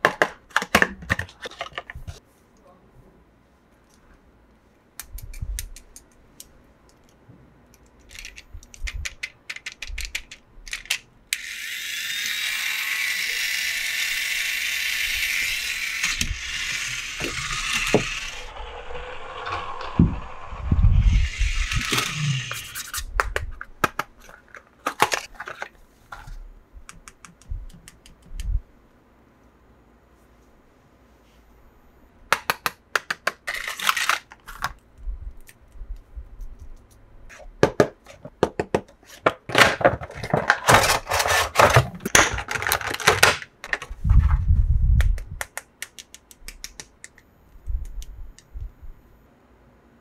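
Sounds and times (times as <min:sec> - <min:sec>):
plastic toys clicking: 0:06.9 - 0:11.0
toy car motor whirring: 0:11.3 - 0:23.1.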